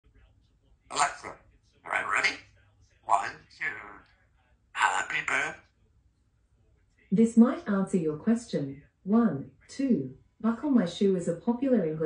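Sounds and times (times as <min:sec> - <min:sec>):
parrot talking: 0:00.9 - 0:02.5, 0:03.1 - 0:04.0, 0:04.8 - 0:05.6.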